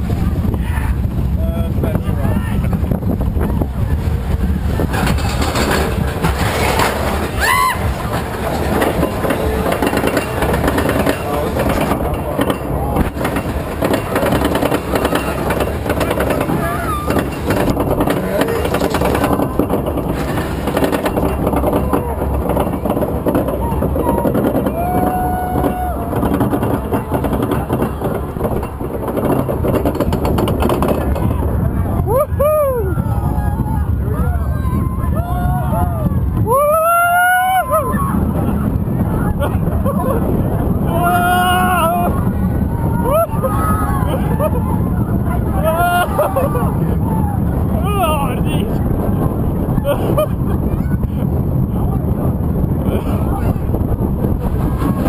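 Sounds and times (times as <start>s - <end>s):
roller coaster rumbling and rattling: 0.0s - 55.0s
wind on microphone: 0.0s - 55.0s.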